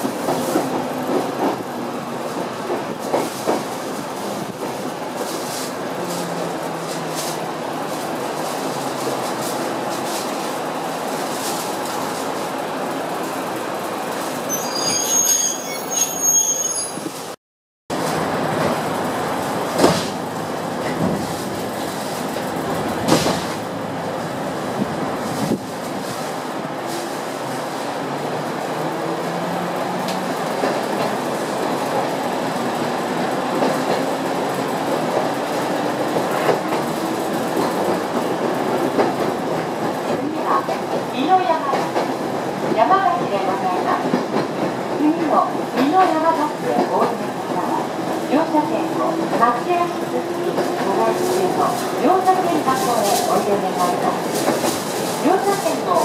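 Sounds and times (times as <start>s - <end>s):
train running rumble: 17.9s - 56.0s.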